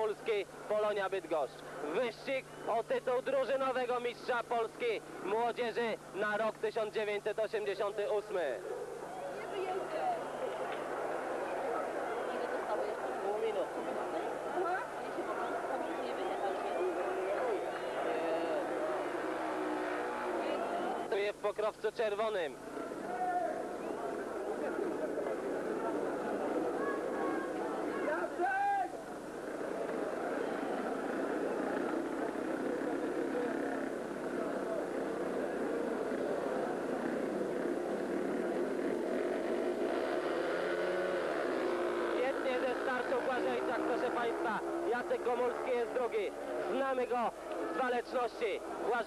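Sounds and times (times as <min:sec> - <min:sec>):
motorcycle engines revving: 0:00.0 - 0:21.4, 0:22.3 - 0:49.0.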